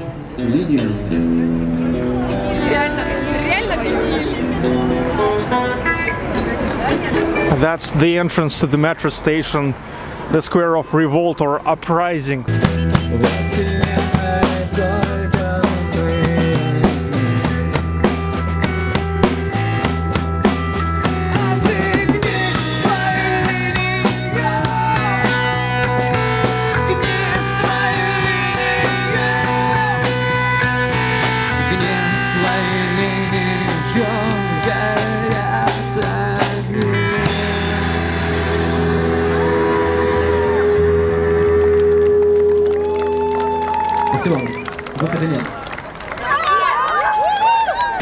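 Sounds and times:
sustained guitar notes: 0:00.0 - 0:09.0, 0:10.4 - 0:45.5
rock band playing live: 0:12.4 - 0:45.0
busy drumming: 0:12.5 - 0:39.2.

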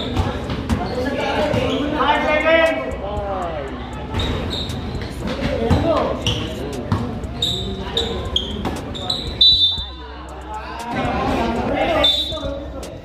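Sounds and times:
sneaker squeaks: 0:00.0 - 0:02.1, 0:04.1 - 0:10.1, 0:11.8 - 0:12.6
spectators' voices: 0:00.0 - 0:13.0.

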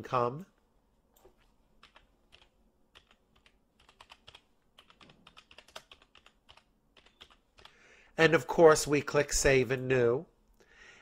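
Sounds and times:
computer keyboard typing: 0:01.2 - 0:07.8.

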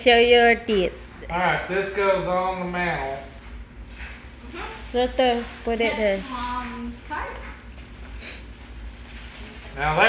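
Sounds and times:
tissue paper crinkling: 0:03.8 - 0:08.1, 0:08.7 - 0:10.0.

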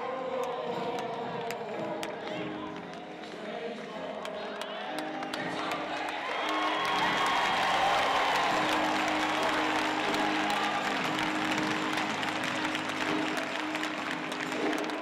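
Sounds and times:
crowd cheering: 0:00.0 - 0:15.0
music with long held notes: 0:00.0 - 0:15.0
audience applauding: 0:00.3 - 0:15.0.

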